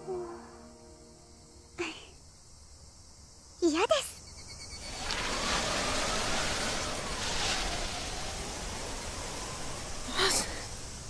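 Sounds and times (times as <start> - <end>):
steady high hiss: 0.0 - 11.0
faint gliding whistling tone: 4.2 - 11.0.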